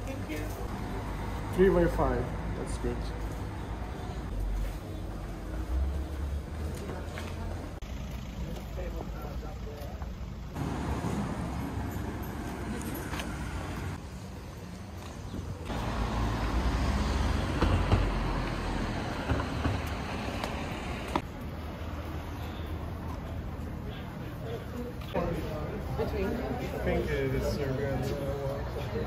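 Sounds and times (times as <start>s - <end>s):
cars passing on street: 0.0s - 29.0s
low vehicle rumble: 0.6s - 14.0s.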